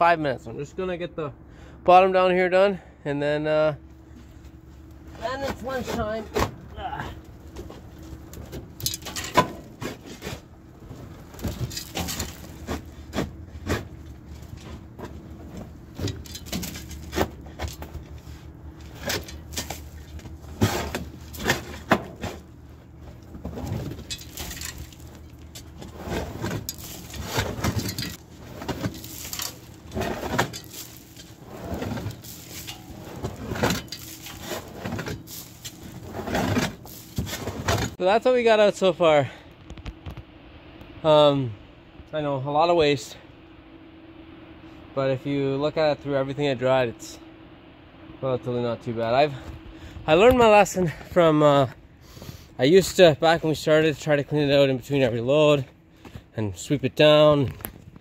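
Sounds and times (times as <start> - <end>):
faint steady hum: 0.0 - 58.0
scraping and knocking corn: 7.6 - 38.0.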